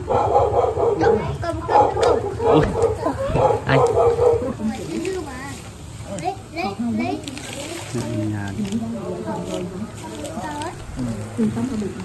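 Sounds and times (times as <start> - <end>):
other voices: 0.5 - 12.0
young man laughing: 2.5 - 3.8.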